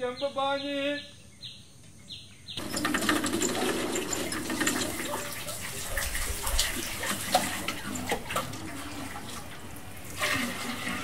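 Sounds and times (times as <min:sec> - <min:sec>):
water splashing and dripping: 0:02.6 - 0:11.0.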